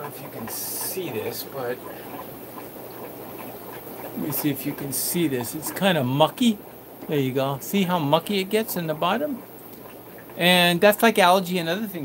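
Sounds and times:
aquarium equipment hum and hiss: 0.0 - 12.0.

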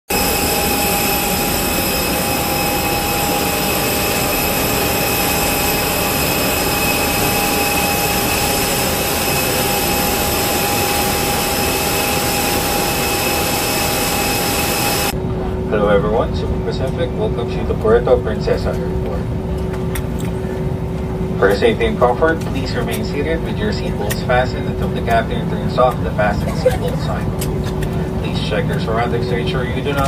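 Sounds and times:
jet turbine roar with high whine: 0.1 - 30.0.

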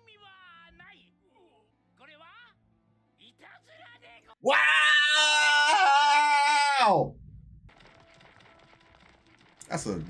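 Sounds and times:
man shouting: 4.4 - 7.1.

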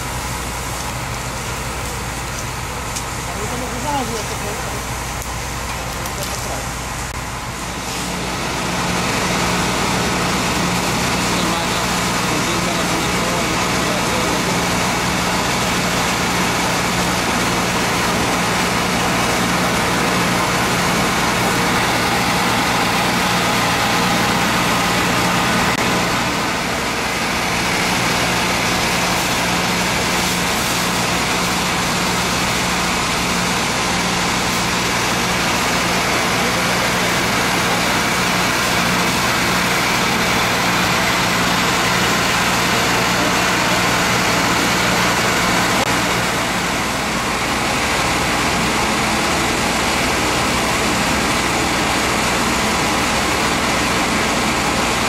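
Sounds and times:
pump engine running steadily: 0.0 - 55.0.

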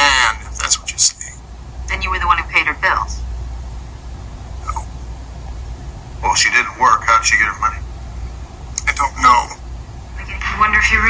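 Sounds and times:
person speaking on television: 0.0 - 3.2, 6.2 - 7.8, 8.8 - 9.6
low hum: 0.0 - 11.0.

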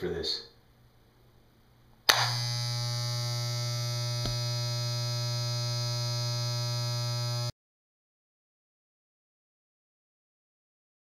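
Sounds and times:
electric buzz: 2.1 - 7.5.

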